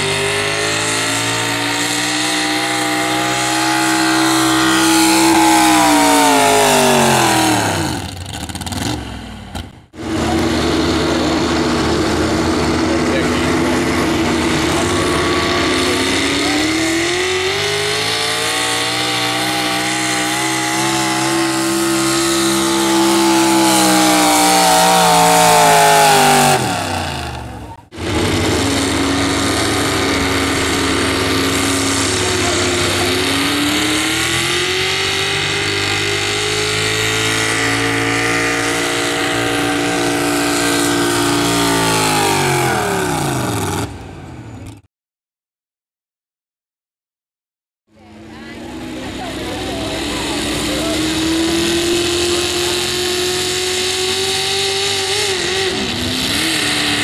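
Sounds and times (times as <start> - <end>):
truck engines revving under load: 0.0 - 44.9, 47.9 - 57.0.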